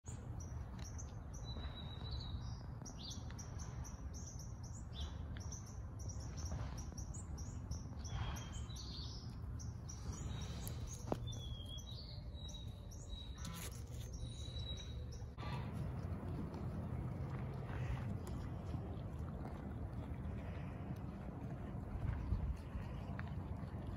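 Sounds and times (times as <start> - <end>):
small birds chirping: 0.1 - 23.9
low rumble: 3.5 - 23.9.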